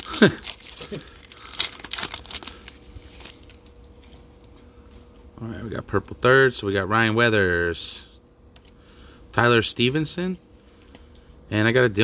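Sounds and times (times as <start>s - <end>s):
foil wrapper crinkling and tearing: 0.0s - 4.6s.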